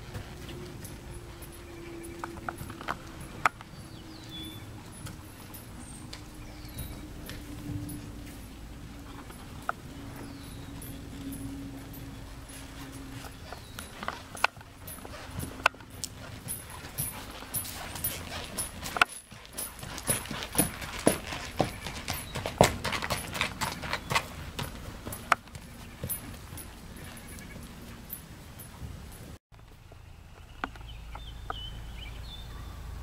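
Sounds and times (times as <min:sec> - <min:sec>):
horse hoofbeats: 0:00.0 - 0:29.4.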